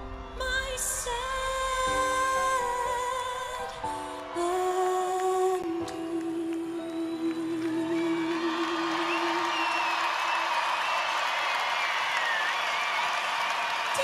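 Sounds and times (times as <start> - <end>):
audience cheering and applause: 3.8 - 14.0
high whistles: 6.9 - 13.7.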